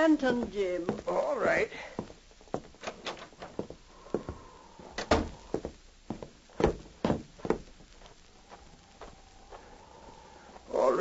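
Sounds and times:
footsteps: 0.0 - 11.0
door opening and shutting: 2.8 - 3.6, 4.9 - 5.5.

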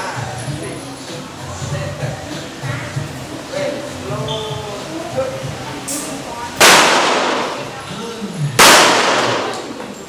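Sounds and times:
pistol shots echoing: 6.6 - 7.6, 8.6 - 9.8.

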